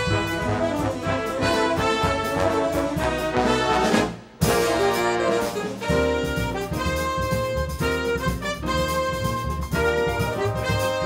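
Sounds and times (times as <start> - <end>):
jazz big band playing: 0.0 - 11.0
loud band hit: 0.0 - 11.0.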